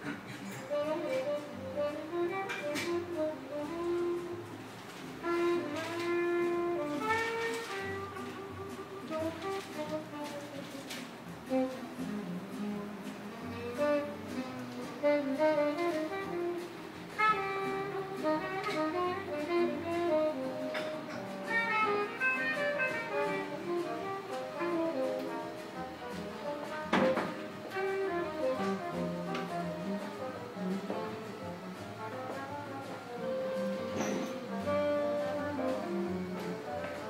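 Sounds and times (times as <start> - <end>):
instrumental music from vinyl record: 0.6 - 37.0.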